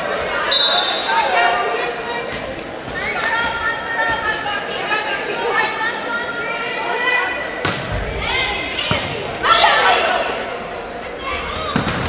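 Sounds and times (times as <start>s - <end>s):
voices chattering and calling: 0.0s - 12.0s.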